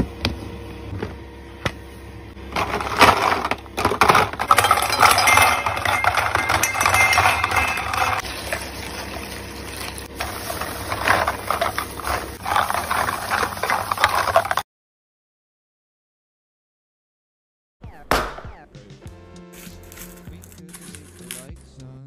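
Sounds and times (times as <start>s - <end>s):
plastic tubes clattering in a bowl: 2.5s - 14.6s, 19.9s - 21.5s.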